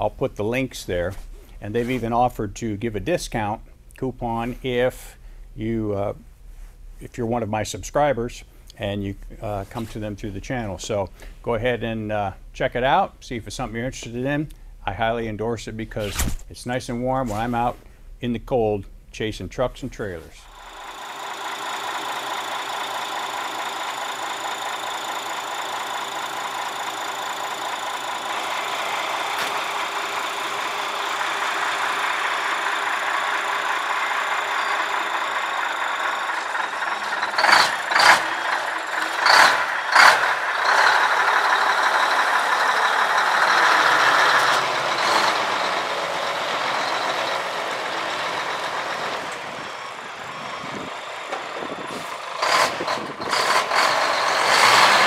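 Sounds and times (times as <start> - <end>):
diesel truck engine running: 20.4 - 55.0.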